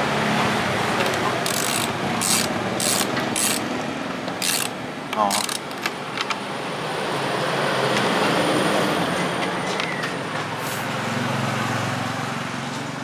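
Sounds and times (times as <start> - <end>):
road vehicle passing by: 6.4 - 13.0.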